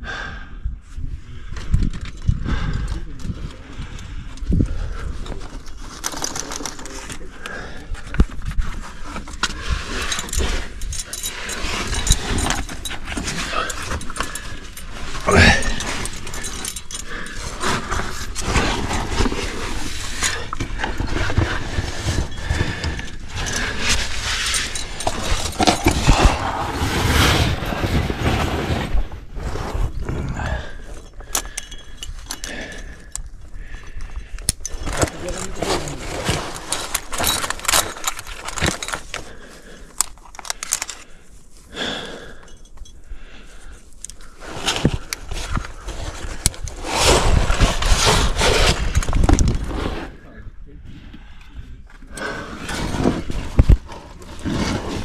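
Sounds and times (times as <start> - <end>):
carabiners clinking: 1.6 - 26.6, 30.0 - 49.7.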